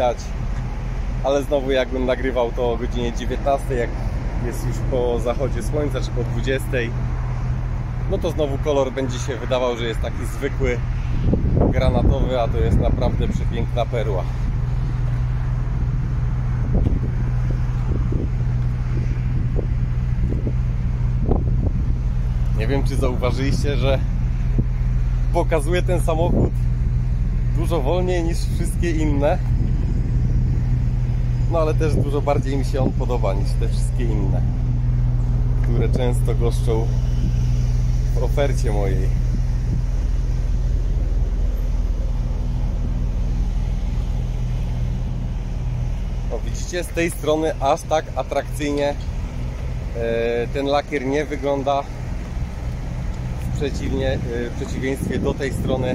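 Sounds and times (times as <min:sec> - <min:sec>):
low engine hum: 0:00.0 - 0:55.9
wind on microphone: 0:10.1 - 0:25.3, 0:26.2 - 0:46.4, 0:51.9 - 0:55.9
footsteps on asphalt: 0:49.0 - 0:49.9, 0:51.9 - 0:53.6.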